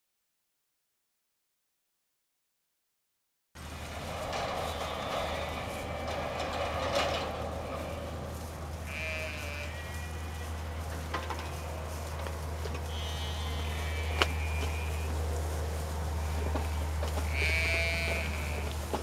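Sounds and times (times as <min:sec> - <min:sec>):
goats bleating: 0:03.6 - 0:19.0
low hum: 0:03.6 - 0:19.0.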